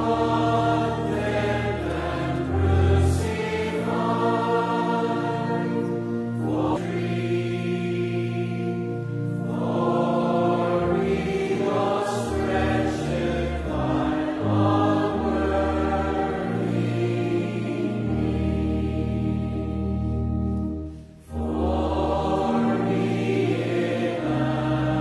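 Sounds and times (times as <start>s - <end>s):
congregation singing a hymn: 0.0s - 25.0s
organ accompaniment: 0.0s - 25.0s.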